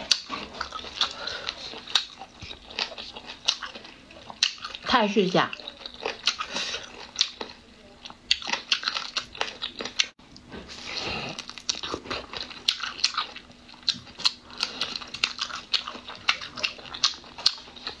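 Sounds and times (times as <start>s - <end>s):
chewing crunchy shrimp: 0.0s - 18.0s.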